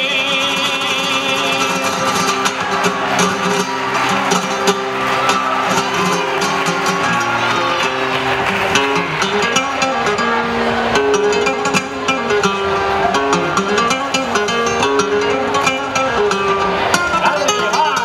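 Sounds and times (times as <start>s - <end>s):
acoustic flamenco guitar: 0.0s - 18.0s
person singing flamenco: 0.0s - 18.0s.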